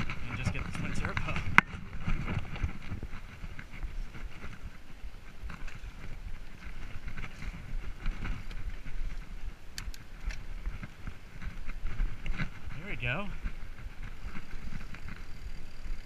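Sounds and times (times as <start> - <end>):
bike rattling: 0.0 - 16.0
bike tyres rumbling on dirt: 0.0 - 16.0
wind buffeting microphone: 0.0 - 16.0.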